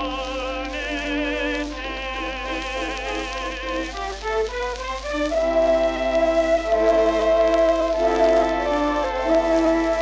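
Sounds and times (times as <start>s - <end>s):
countertenor singing: 0.0s - 9.3s
small orchestra: 0.0s - 10.0s.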